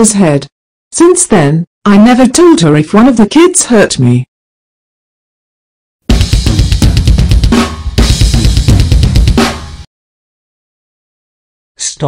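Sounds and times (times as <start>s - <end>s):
drum kit playing comic sting: 6.1s - 9.9s.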